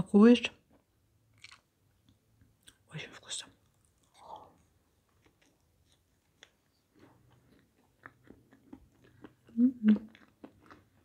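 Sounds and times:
soft chewing: 0.7 - 11.0.

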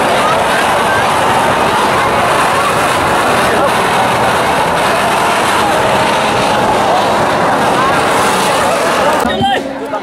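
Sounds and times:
firework fountain hissing: 0.0 - 9.9.

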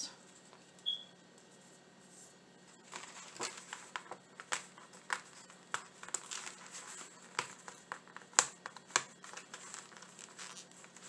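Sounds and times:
plastic sheet crinkling: 2.7 - 11.0.

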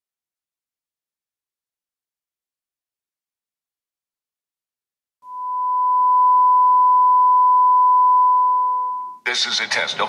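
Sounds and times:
fainter lower tone: 5.2 - 9.2
sine wave test tone: 5.2 - 9.2.

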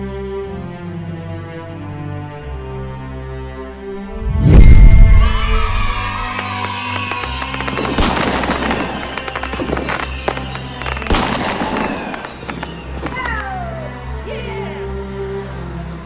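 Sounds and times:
background music: 0.0 - 16.0
falling whistles: 4.4 - 13.6
fireworks bangs: 4.5 - 13.4
fireworks crackling: 5.6 - 13.5.

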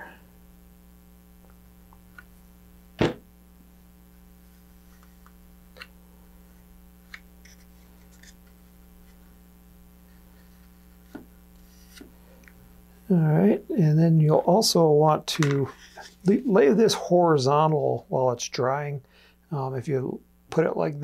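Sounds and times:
electrical mains hum: 0.0 - 21.0
sharp knock: 3.0 - 3.2.

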